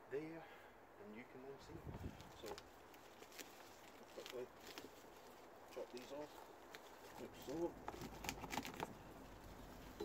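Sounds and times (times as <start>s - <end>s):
leaves rustling: 1.6s - 10.0s
plant stems clicking: 2.2s - 8.9s.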